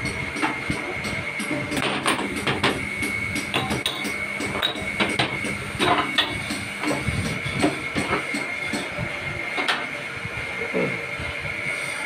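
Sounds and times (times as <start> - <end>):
machinery whine: 0.0 - 12.0.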